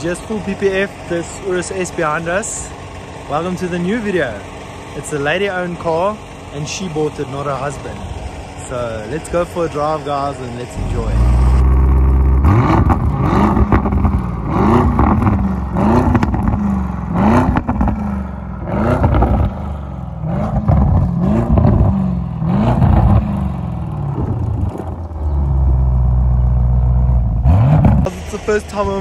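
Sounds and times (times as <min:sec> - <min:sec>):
car engine idling: 0:00.0 - 0:29.0
car engine revving: 0:00.0 - 0:29.0.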